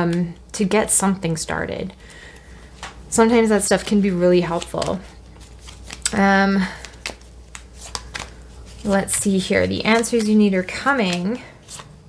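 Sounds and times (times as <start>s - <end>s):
cards being shuffled: 3.7s - 12.0s.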